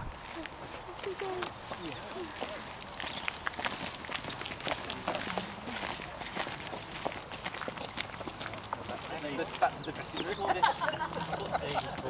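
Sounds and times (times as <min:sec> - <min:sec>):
footsteps of people walking: 0:00.0 - 0:12.0
faint voices talking: 0:00.2 - 0:03.1, 0:04.5 - 0:12.0.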